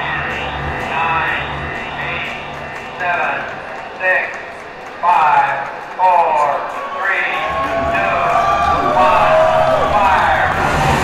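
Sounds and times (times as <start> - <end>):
low rumbling drone: 7.4 - 11.0.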